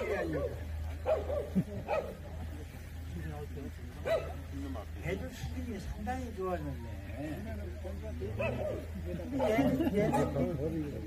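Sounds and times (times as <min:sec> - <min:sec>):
dog barking: 0:01.0 - 0:02.2, 0:04.0 - 0:04.4, 0:08.4 - 0:10.4.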